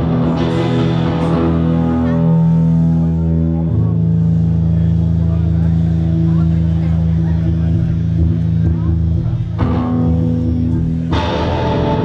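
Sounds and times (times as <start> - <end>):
rock band droning chord: 0.0 - 12.0.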